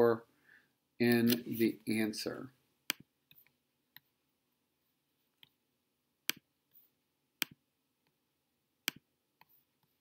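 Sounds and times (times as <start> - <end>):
computer mouse clicks: 8.9 - 9.6.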